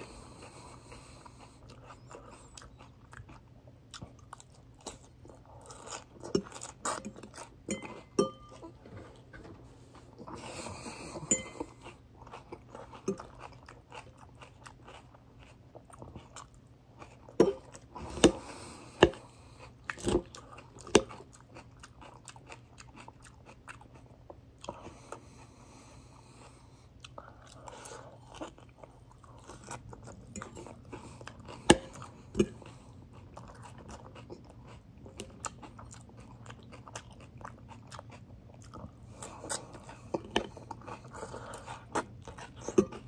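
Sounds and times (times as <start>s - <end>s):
person chewing crisp salad: 0.0s - 43.0s.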